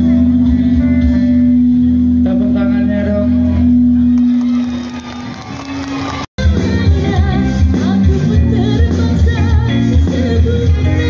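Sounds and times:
loud live band with guitar: 0:00.0 - 0:11.0.

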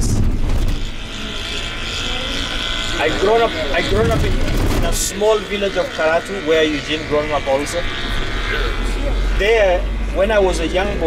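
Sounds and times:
engine and road rumble: 0:00.0 - 0:11.0
steady high whine: 0:00.0 - 0:11.0.

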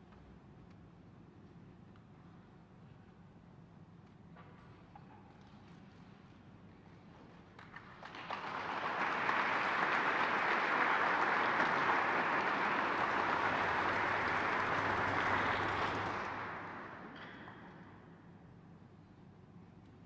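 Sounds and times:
audience applauding: 0:07.8 - 0:17.2.

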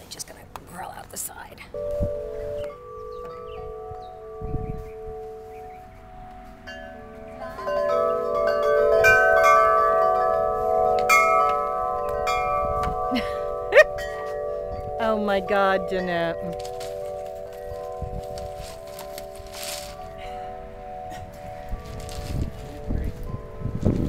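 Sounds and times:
chimes ringing: 0:01.7 - 0:24.0.

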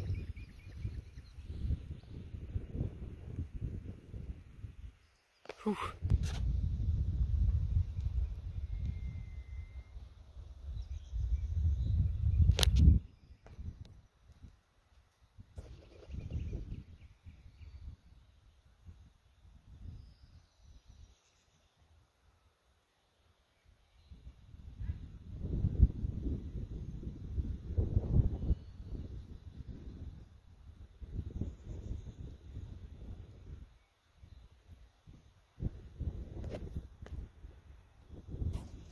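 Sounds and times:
wind buffeting microphone: 0:00.0 - 0:05.0, 0:06.0 - 0:14.5, 0:15.4 - 0:21.0, 0:24.1 - 0:33.7, 0:34.3 - 0:38.9.

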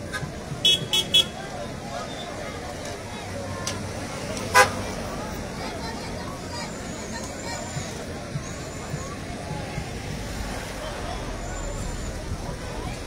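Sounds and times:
crowd chatter: 0:00.0 - 0:13.0
traffic: 0:00.0 - 0:13.0
vehicle horn tooting: 0:00.6 - 0:01.4.

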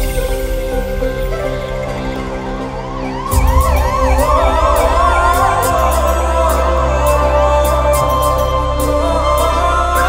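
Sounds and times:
ambulance siren yelping: 0:03.0 - 0:06.9
music with heavy bass beat: 0:03.3 - 0:10.0.

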